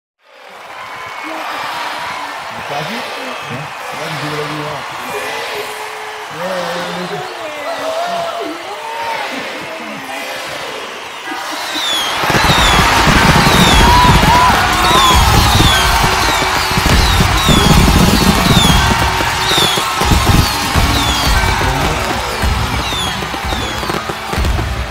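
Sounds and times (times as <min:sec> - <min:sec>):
descending firework whistles: 0:11.5 - 0:24.9
fireworks bursting: 0:11.8 - 0:24.9
voices counting down: 0:13.6 - 0:24.5.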